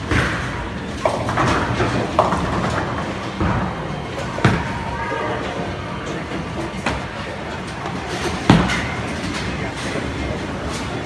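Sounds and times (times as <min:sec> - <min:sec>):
bowling balls rolling: 0:00.0 - 0:11.0.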